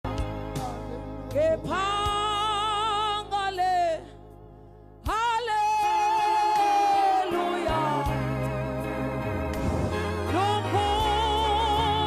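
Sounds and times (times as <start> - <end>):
woman singing gospel: 0.1 - 4.2, 5.1 - 9.2, 10.2 - 12.0.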